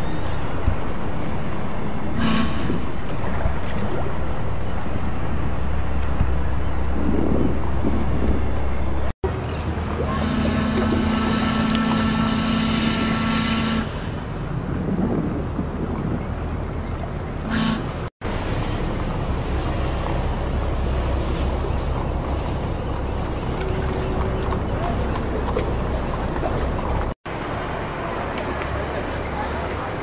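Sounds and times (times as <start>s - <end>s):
boat engine rumble: 0.0s - 30.0s
water: 0.0s - 30.0s
wind: 0.0s - 30.0s
ship's horn: 2.0s - 3.4s, 9.9s - 15.2s, 17.4s - 21.6s.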